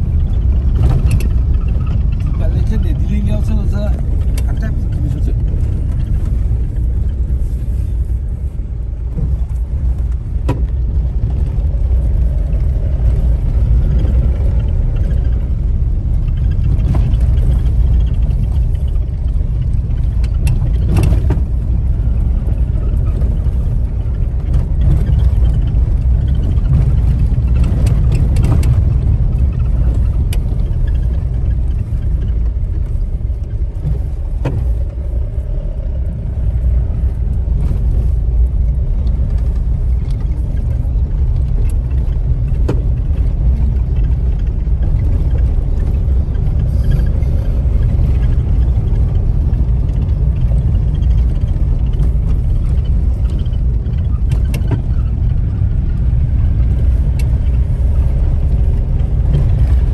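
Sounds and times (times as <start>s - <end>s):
car rumble on rough road: 0.0s - 59.9s.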